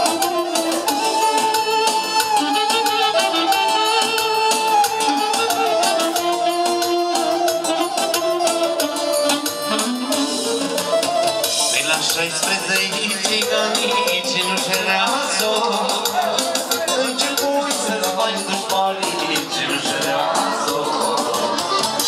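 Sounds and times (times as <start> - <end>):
live band party music: 0.0 - 22.0.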